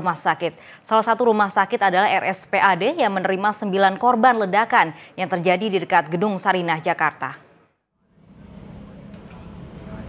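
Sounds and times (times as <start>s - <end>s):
low traffic rumble: 8.0s - 10.0s.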